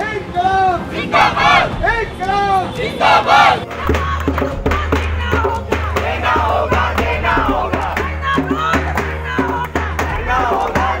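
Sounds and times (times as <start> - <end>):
busy crowd: 0.0 - 11.0
group shouting in unison: 1.0 - 1.7, 2.9 - 3.7.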